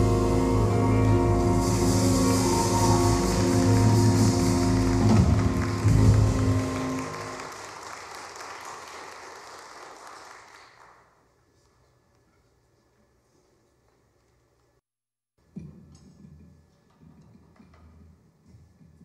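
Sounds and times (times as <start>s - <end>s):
jazz band final chord: 0.0s - 7.5s
audience applause: 1.5s - 11.1s.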